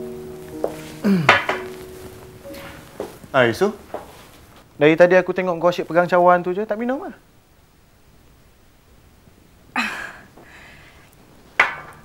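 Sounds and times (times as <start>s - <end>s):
faint held piano note: 0.0s - 4.1s.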